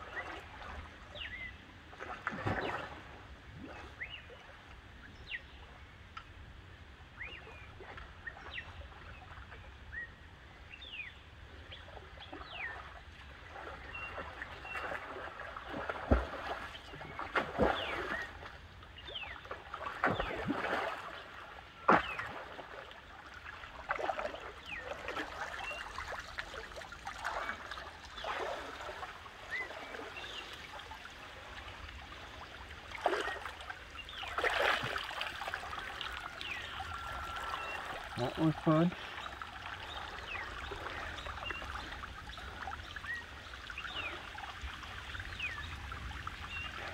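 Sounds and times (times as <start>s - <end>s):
water splashing from swimming: 0.0s - 4.6s, 11.8s - 46.9s.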